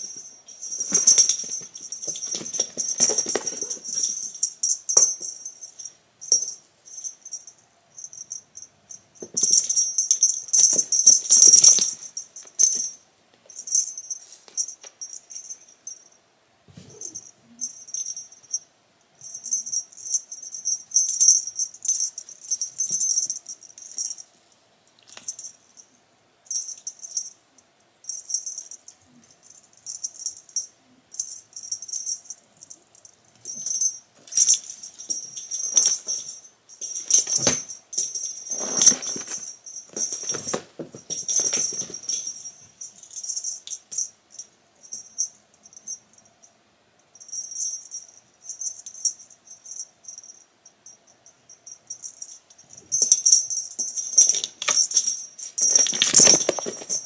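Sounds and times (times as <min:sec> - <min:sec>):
cats scuffling: 0:00.0 - 0:05.3, 0:33.4 - 0:42.6, 0:52.9 - 0:57.0
jingly cat toy rattle: 0:00.0 - 0:16.2, 0:16.8 - 0:25.9, 0:28.0 - 0:46.2, 0:47.1 - 0:57.0.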